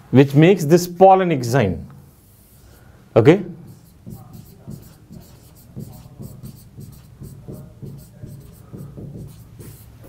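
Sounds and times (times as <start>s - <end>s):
chalk scratching on a blackboard: 2.2s - 2.9s, 3.6s - 10.0s
chalk tapping: 3.6s - 10.0s.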